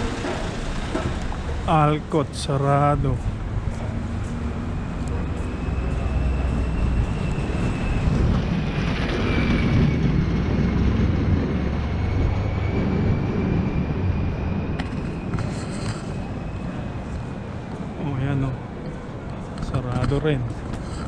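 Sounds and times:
city traffic rumble: 0:00.0 - 0:21.0
faint high whine: 0:04.7 - 0:19.4.

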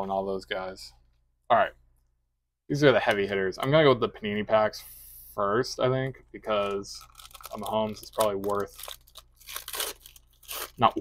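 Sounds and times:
foil wrapper tearing and crinkling: 0:06.6 - 0:11.0.

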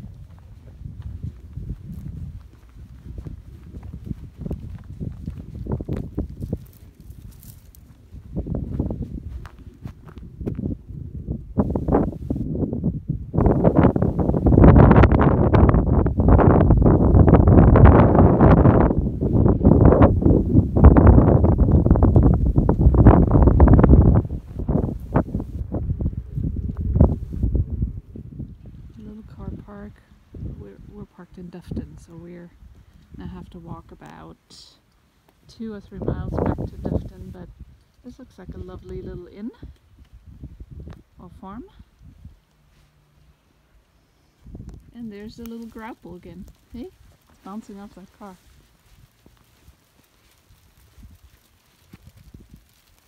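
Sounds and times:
footsteps on gravel: 0:00.0 - 0:10.7, 0:44.8 - 0:53.0.

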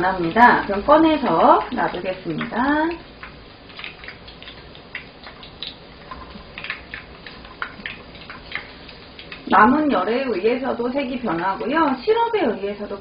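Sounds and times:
oil sizzling with pops: 0:00.0 - 0:13.0.

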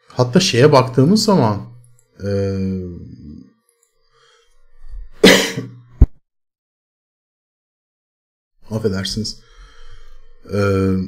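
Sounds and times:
man clearing his throat: 0:05.2 - 0:05.8.

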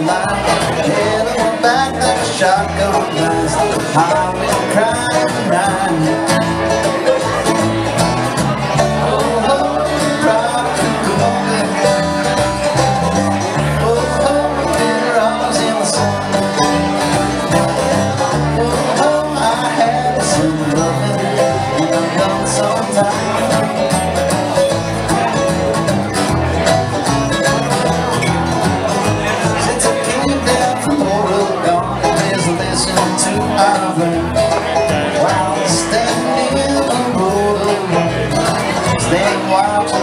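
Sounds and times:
bluegrass string band playing: 0:00.0 - 0:40.0.

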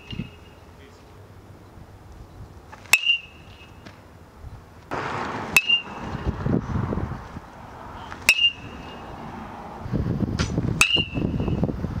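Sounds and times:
metal bat hitting ball: 0:02.8 - 0:03.8, 0:05.5 - 0:06.3, 0:08.2 - 0:09.1, 0:10.4 - 0:11.6
rushing noise: 0:04.9 - 0:11.7.

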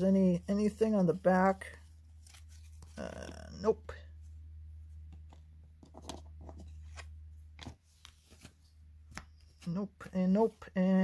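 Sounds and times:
low steady hum: 0:00.0 - 0:11.0
trading cards slapping and rustling: 0:00.6 - 0:03.6, 0:05.0 - 0:09.8.

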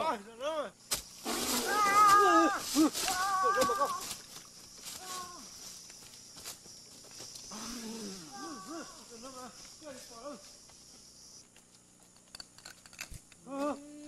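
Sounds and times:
person wailing: 0:01.6 - 0:04.1, 0:07.6 - 0:09.1, 0:13.4 - 0:14.0.

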